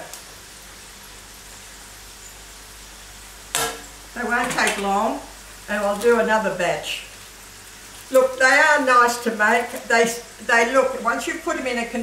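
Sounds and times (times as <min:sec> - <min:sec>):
pastry deep-frying in oil: 0:00.0 - 0:12.0.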